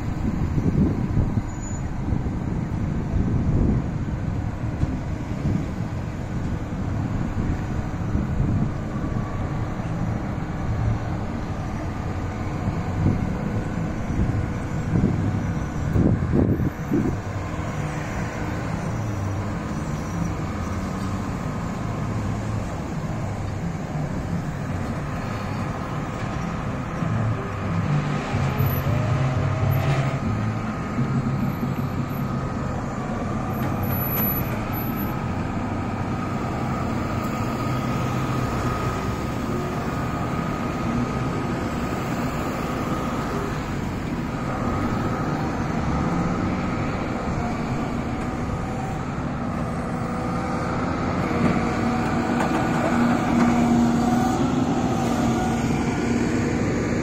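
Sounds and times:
road traffic passing: 0.0 - 57.0.

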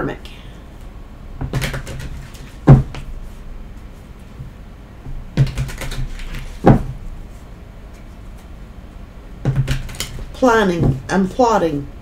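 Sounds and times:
cards being shuffled: 1.5 - 3.1, 5.4 - 6.8, 9.5 - 10.3.

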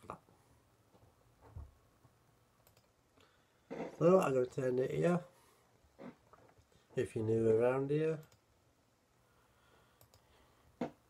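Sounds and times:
faint clicks: 2.6 - 3.4, 10.0 - 10.3.

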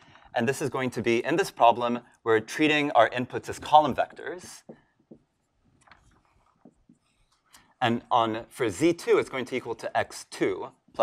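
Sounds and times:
marker writing on a whiteboard: 3.6 - 7.5.

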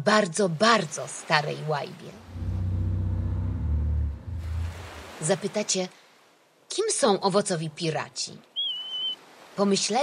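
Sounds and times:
low steady pitched rumble: 2.2 - 5.0.

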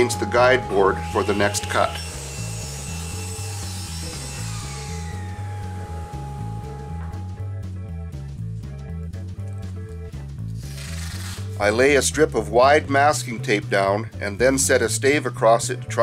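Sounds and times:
table saw whine: 0.0 - 7.4
background music with bass line: 0.0 - 16.0.

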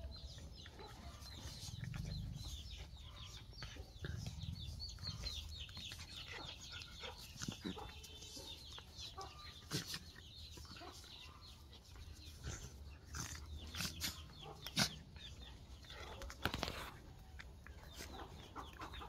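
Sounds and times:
chickens clucking: 0.0 - 19.0.

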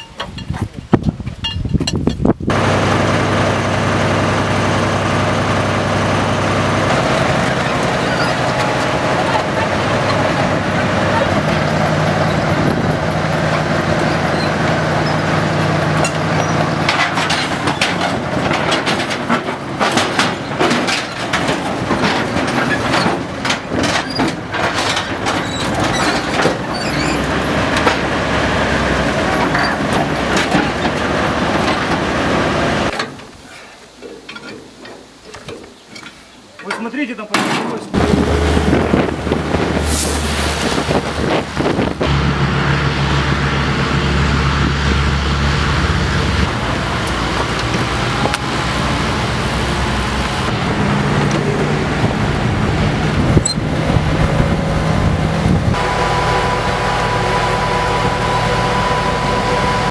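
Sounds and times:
metal clanking and clatter: 1.4 - 33.3
diesel engine running: 2.5 - 33.0, 37.9 - 59.9.

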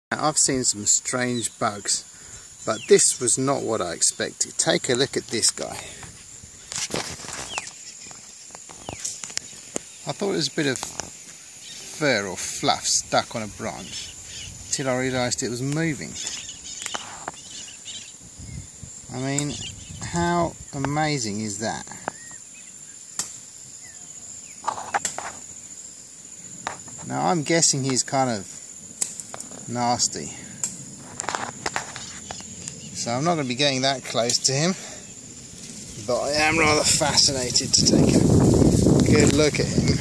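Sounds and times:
falling bird chirps: 0.9 - 27.8, 28.6 - 40.0
high-pitched insect drone: 1.4 - 40.0
brief rustle: 5.7 - 9.9.

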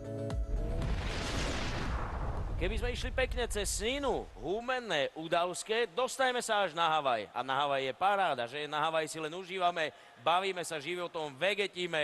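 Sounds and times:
background music: 0.0 - 1.2
man speaking: 2.6 - 12.0.

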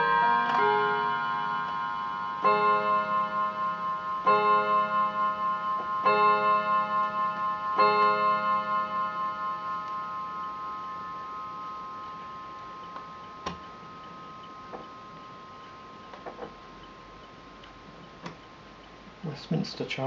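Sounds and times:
clock chime tune: 0.0 - 17.4
mantel clock striking: 0.0 - 19.2.

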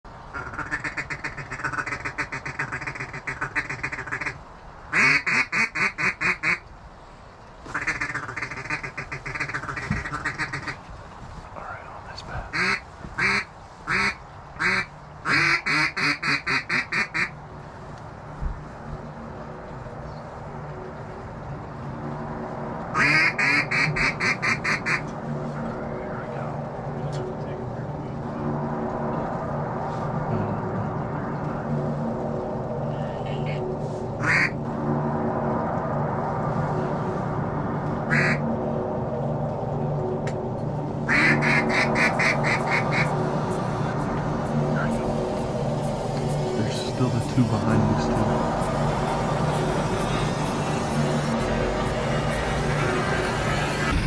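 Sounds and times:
fast chattering duck calls: 0.4 - 4.4, 7.8 - 10.8, 12.5 - 17.3, 34.2 - 34.5, 38.1 - 38.4, 41.1 - 43.1
duck call quacks: 0.4 - 6.6, 7.7 - 10.8, 12.5 - 17.3, 23.0 - 25.0, 34.2 - 34.6, 38.1 - 38.4, 41.1 - 43.1.

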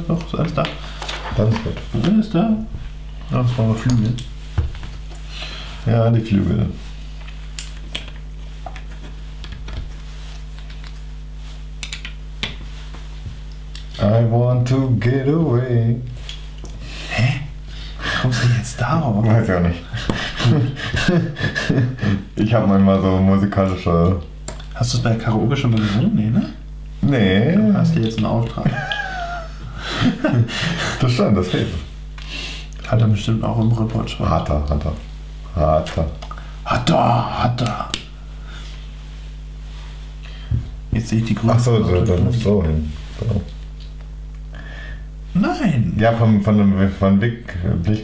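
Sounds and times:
low hum: 0.0 - 48.0
men laughing: 19.8 - 22.4, 28.4 - 31.8.

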